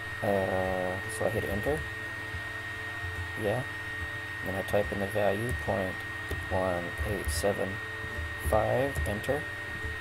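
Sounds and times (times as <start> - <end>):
electrical hum: 0.0 - 10.0
high-pitched whine: 0.0 - 10.0.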